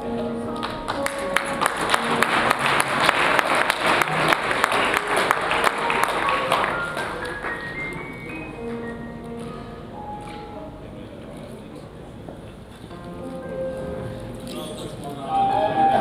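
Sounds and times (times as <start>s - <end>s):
background music sustained notes: 0.0s - 11.2s, 12.9s - 16.0s
audience applauding: 0.6s - 8.8s.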